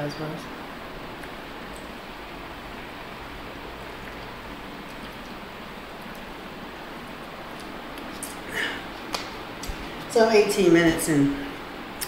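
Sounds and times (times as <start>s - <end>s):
steady background hiss: 0.0s - 12.0s.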